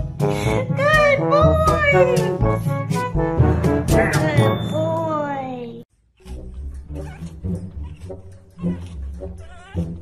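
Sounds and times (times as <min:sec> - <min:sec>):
puppy whining and yipping: 0:06.9 - 0:10.0.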